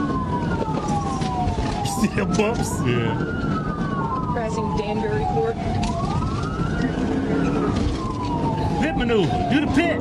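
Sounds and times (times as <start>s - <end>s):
car engine and road noise: 0.0s - 10.0s
police siren wailing: 0.0s - 10.0s.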